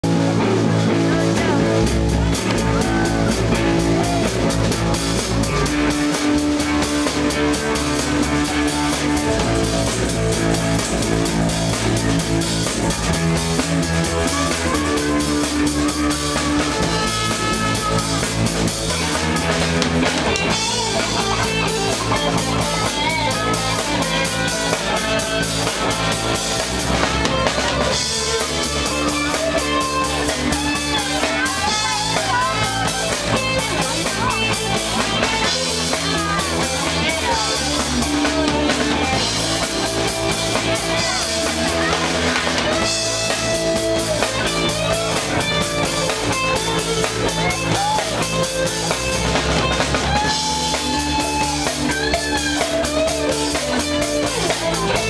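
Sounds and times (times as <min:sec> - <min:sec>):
bass guitar: 0:00.0 - 0:55.0
drum kit with cymbal beat: 0:00.0 - 0:55.0
electric guitar: 0:00.0 - 0:55.0.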